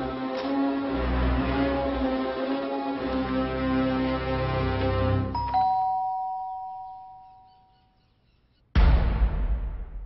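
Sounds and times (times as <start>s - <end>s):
background music: 0.0s - 5.8s
two-tone doorbell chime: 5.3s - 7.7s.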